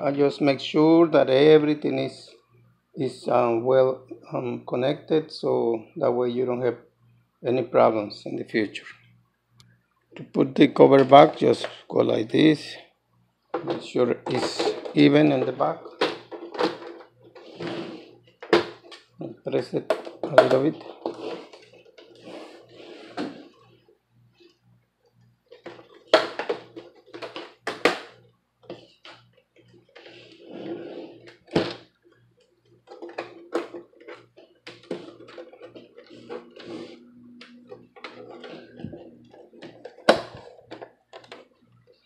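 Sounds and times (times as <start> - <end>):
plastic cover clicks and knocks: 25.5 - 29.2, 37.4 - 41.5.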